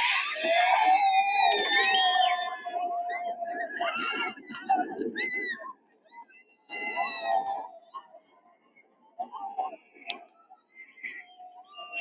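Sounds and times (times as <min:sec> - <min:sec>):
high-pitched screams: 0:00.0 - 0:05.6.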